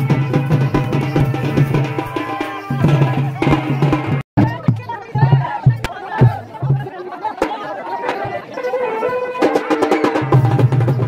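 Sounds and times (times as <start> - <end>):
crowd chatter and shouting: 0.0 - 11.0
drum beats: 0.0 - 11.0.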